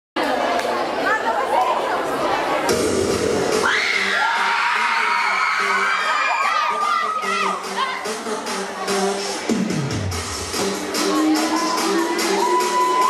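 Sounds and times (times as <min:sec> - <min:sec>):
audience shouting and cheering: 0:02.7 - 0:08.2, 0:10.7 - 0:13.0
song with pulsing beat: 0:02.7 - 0:13.0
high-pitched screams: 0:03.6 - 0:07.5, 0:11.4 - 0:13.0.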